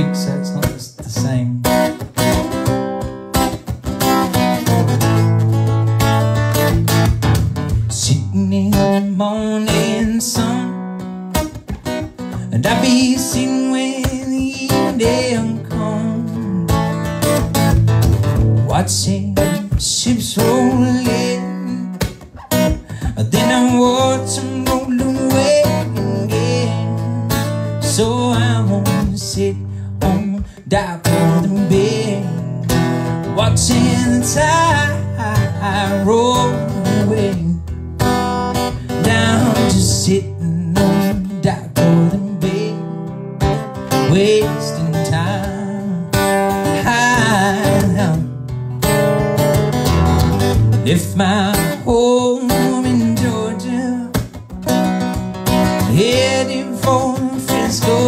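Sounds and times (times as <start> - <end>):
man singing: 0.0 - 2.6, 7.7 - 11.0, 12.2 - 17.4, 18.3 - 48.5, 50.7 - 54.5, 55.7 - 58.0
acoustic guitar strumming: 0.0 - 58.0.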